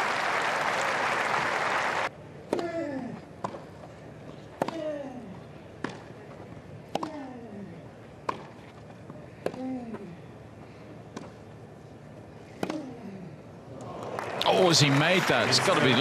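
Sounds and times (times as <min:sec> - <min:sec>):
crowd applause: 0:00.0 - 0:02.1, 0:13.9 - 0:16.0
racket striking tennis ball: 0:06.9 - 0:07.2, 0:12.6 - 0:12.9
tennis player grunting: 0:06.9 - 0:07.9.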